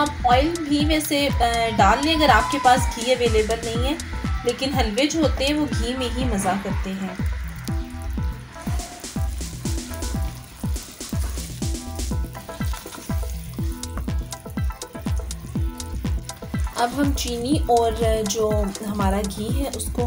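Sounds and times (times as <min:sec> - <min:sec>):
background music with drum beat: 0:00.0 - 0:20.0
ghee bubbling and sizzling: 0:00.0 - 0:20.0
spatula stirring in pan: 0:07.3 - 0:17.4.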